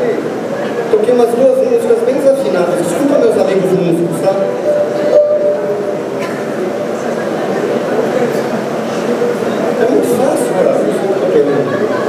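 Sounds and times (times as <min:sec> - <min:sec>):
voices chattering in a hall: 0:00.0 - 0:12.0.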